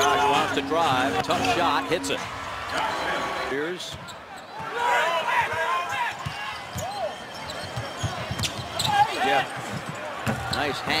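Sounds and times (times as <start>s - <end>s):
sneakers squeaking: 5.8s - 10.9s.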